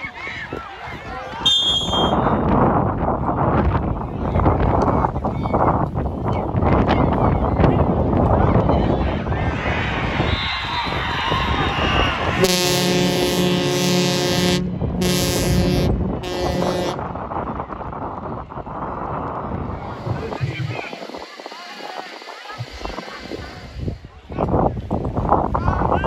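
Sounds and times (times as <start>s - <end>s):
crowd cheering and shouting: 0.0s - 2.4s, 4.0s - 13.2s, 17.7s - 24.5s
air horn blasts: 1.5s - 2.3s, 12.4s - 17.1s.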